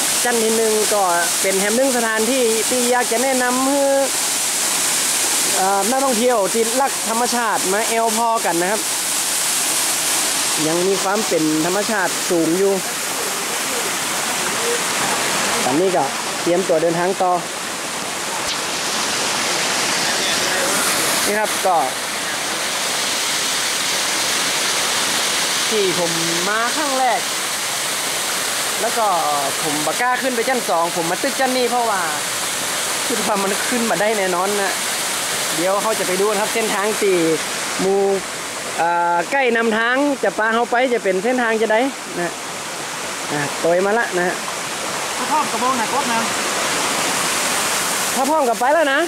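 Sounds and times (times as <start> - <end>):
waterfall rushing into pool: 0.0 - 49.0.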